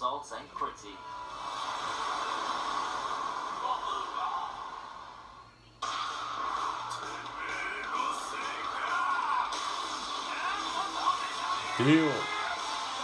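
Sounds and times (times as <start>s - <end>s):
anime soundtrack music and effects: 0.9s - 13.0s.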